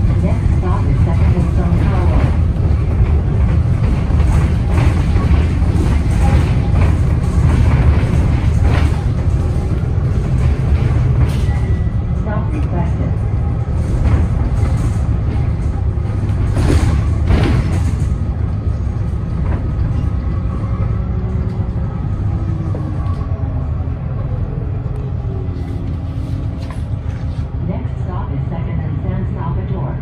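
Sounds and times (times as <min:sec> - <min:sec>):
bus engine rumble: 0:00.0 - 0:30.0.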